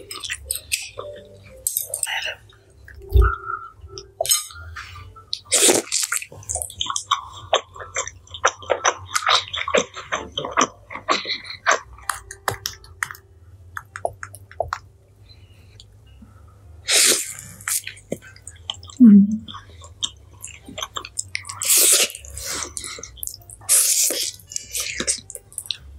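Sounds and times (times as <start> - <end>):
sausage squishing in cheese sauce: 4.2 - 13.2, 16.8 - 25.9.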